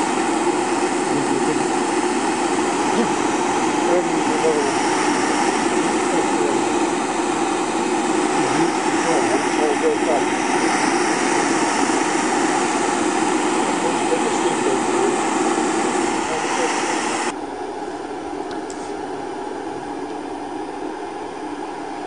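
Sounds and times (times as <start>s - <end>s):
gas burner rushing: 0.0s - 17.4s.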